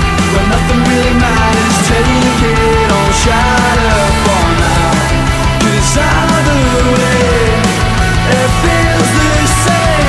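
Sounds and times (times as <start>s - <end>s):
heavy rock song: 0.0s - 10.0s.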